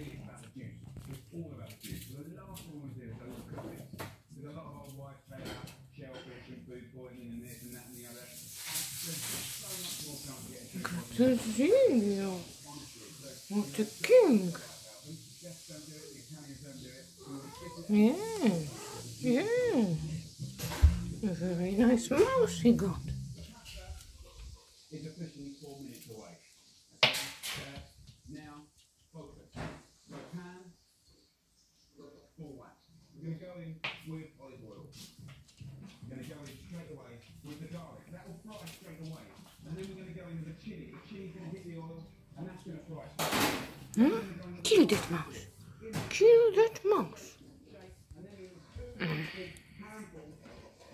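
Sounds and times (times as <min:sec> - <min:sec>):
chili sizzling in hot oil: 0:08.4 - 0:23.3
cat meowing: 0:17.2 - 0:19.2.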